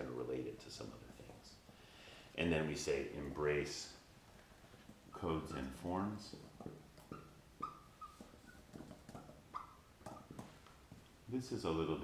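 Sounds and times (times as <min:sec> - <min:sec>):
high squeaks of writing on a board: 0:05.1 - 0:10.6.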